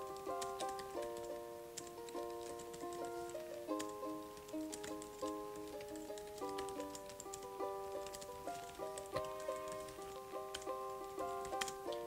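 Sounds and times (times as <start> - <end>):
computer keyboard typing: 0.0 - 12.0
instrumental background music: 0.0 - 12.0.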